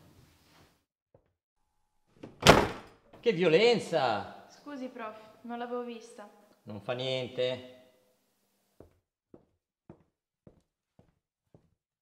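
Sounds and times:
door slamming: 0:02.2 - 0:03.0.

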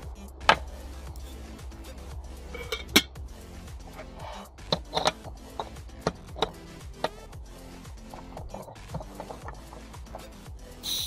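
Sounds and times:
soft background music: 0:00.0 - 0:11.0
metal lid clinking on mug: 0:02.6 - 0:03.1.

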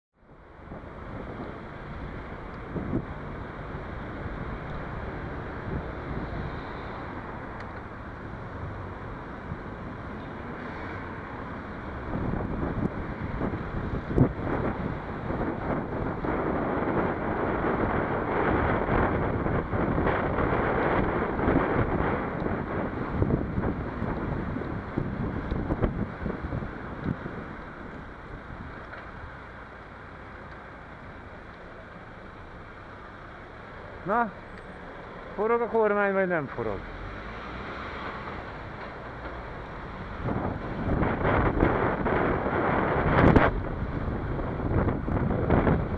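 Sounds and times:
road and traffic noise: 0:00.1 - 0:45.9
wind rushing over microphone: 0:00.3 - 0:29.6, 0:37.0 - 0:45.9.

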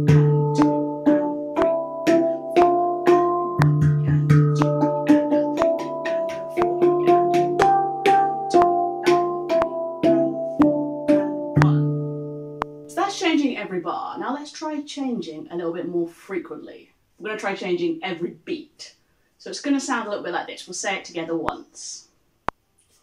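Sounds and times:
deep low handpan note: 0:00.0 - 0:12.9
handpan notes: 0:00.0 - 0:13.0.

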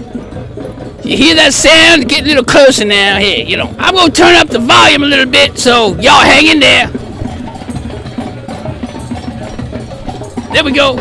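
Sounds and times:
many drums playing: 0:00.0 - 0:11.0.

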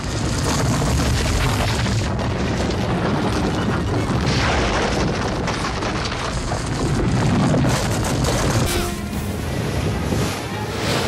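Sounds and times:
film soundtrack music: 0:08.7 - 0:11.0.

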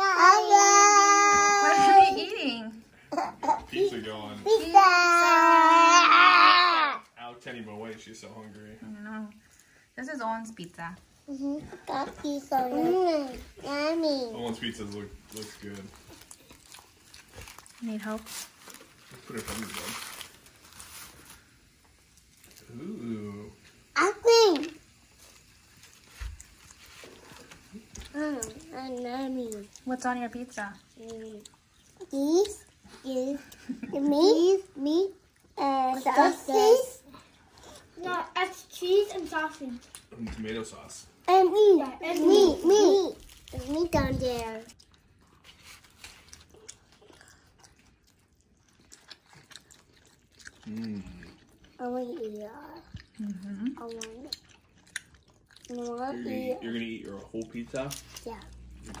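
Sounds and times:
chewing and biting pizza: 0:14.3 - 0:23.0, 0:25.0 - 0:29.9, 0:41.9 - 0:59.0
faint paper rustling: 0:45.3 - 0:46.4.

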